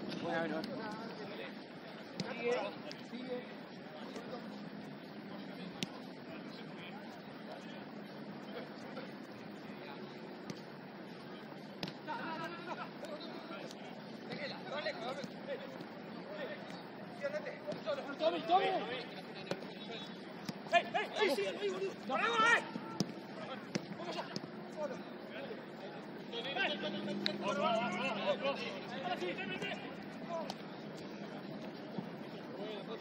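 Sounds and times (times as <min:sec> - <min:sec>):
low murmur of voices: 0:00.0 - 0:33.0
distant players shouting: 0:05.2 - 0:33.0.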